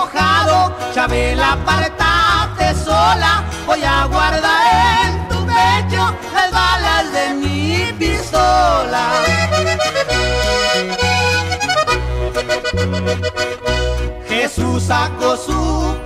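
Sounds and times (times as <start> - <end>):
accordion playing: 0.0 - 16.0
bouncing bass accompaniment: 0.2 - 16.0.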